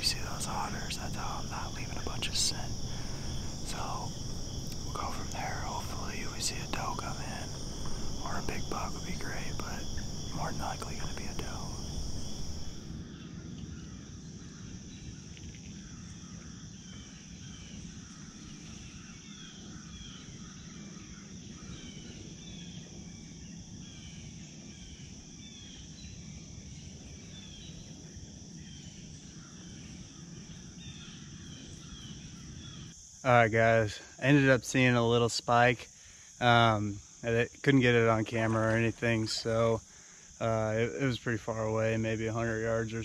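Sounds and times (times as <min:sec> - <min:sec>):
bird chirping: 0:00.0 - 0:12.9
low background rumble: 0:00.0 - 0:13.0
insects droning: 0:00.0 - 0:43.0.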